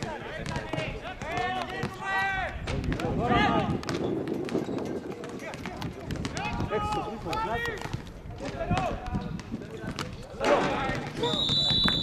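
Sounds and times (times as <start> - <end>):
players shouting: 0.0 - 3.7
ball kicks: 0.0 - 12.0.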